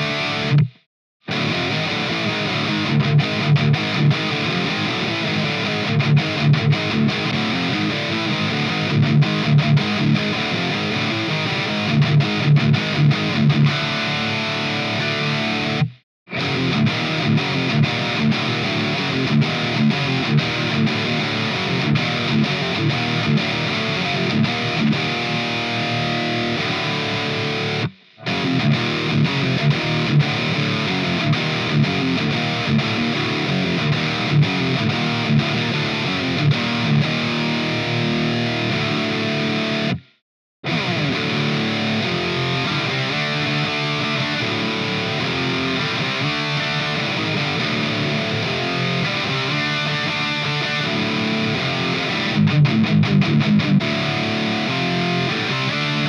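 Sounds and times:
distorted electric guitar riffs: 0:00.0 - 0:56.0.

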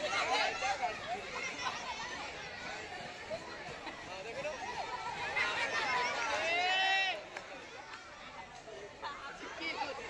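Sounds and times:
young voices chattering: 0:00.0 - 0:10.0.

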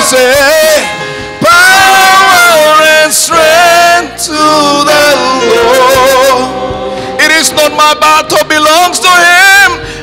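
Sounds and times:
amplified gospel singing: 0:00.0 - 0:10.0.

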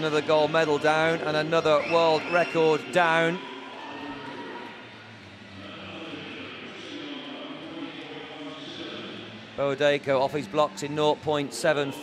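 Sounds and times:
swimming pool crowd hubbub: 0:00.0 - 0:12.0.

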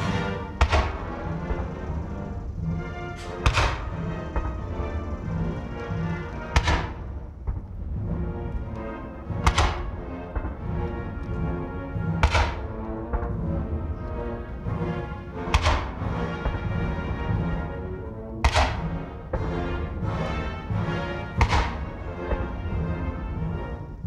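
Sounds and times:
military band playing anthem: 0:00.0 - 0:24.0.

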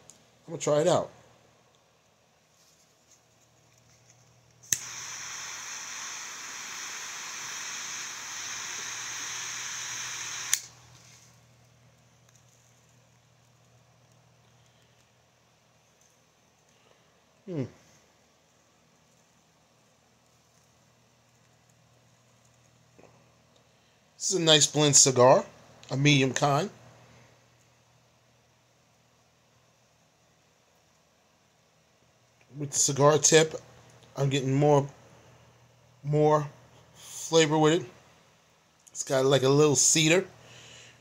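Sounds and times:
torch lighter click: 0:04.6 - 0:10.8
torch lighter jet hiss: 0:04.6 - 0:11.4.

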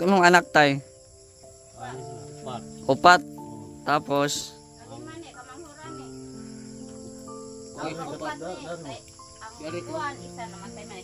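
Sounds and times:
crickets shrilling: 0:00.0 - 0:11.0
soft music of long held notes: 0:00.0 - 0:11.0.

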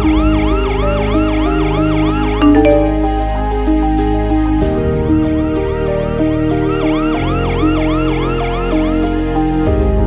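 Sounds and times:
background music: 0:02.4 - 0:04.3.

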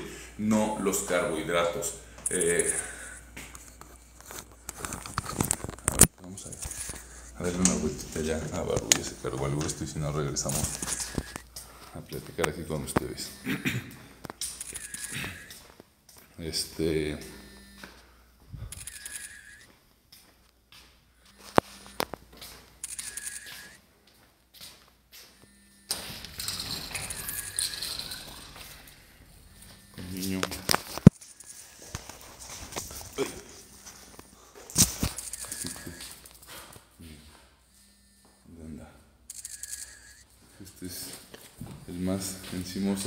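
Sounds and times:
phone handling rustles: 0:03.5 - 0:09.8, 0:29.7 - 0:36.8.

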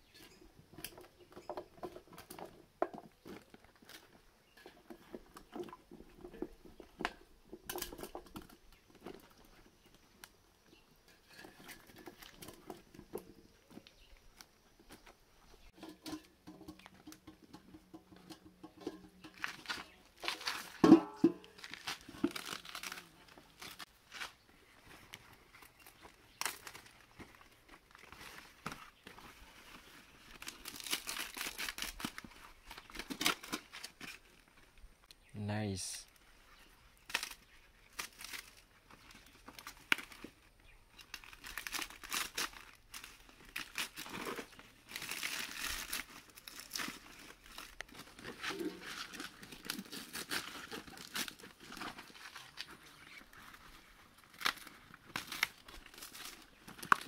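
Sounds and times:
banana leaves rustling and crinkling: 0:00.0 - 0:57.0.

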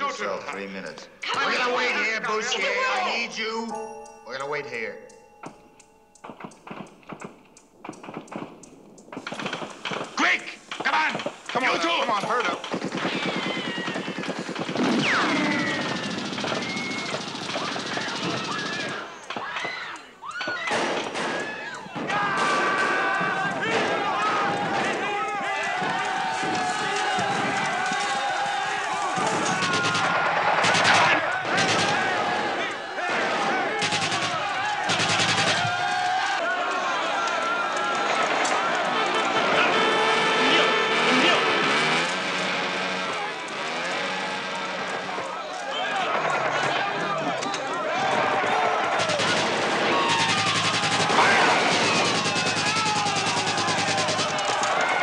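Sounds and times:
men shouting: 0:01.2 - 0:03.4, 0:10.2 - 0:14.1, 0:21.9 - 0:55.0
machine-gun bursts: 0:09.2 - 0:19.1, 0:29.1 - 0:32.3, 0:33.7 - 0:35.9, 0:48.9 - 0:55.0
gunshots: 0:09.2 - 0:19.8, 0:20.5 - 0:36.3, 0:48.1 - 0:55.0.

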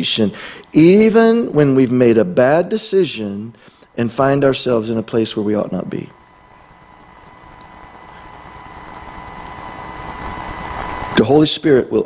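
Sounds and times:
thin high tone: 0:00.0 - 0:11.3
electrical hum: 0:00.0 - 0:12.0
steady hiss: 0:00.0 - 0:12.0.

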